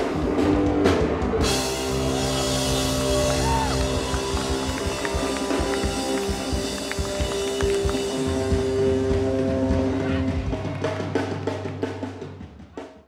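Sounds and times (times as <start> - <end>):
live pop-punk band music: 0.0 - 12.8.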